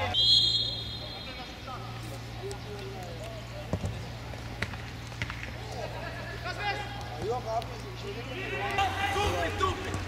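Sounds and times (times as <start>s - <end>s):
distant players shouting: 8.0s - 10.0s.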